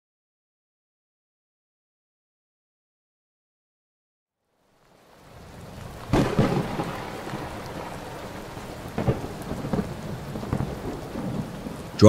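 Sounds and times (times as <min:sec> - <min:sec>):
heavy rain: 0:04.5 - 0:12.0
thunder clap and rumbles: 0:05.2 - 0:12.0.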